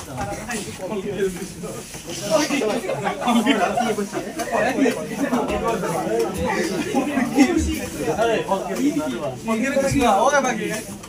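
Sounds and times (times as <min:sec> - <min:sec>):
group talking: 0:00.0 - 0:11.0
people laughing: 0:00.2 - 0:09.8.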